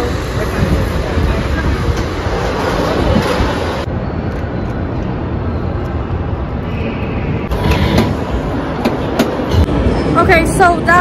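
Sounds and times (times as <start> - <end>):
amusement ride rumbling: 0.0 - 6.6.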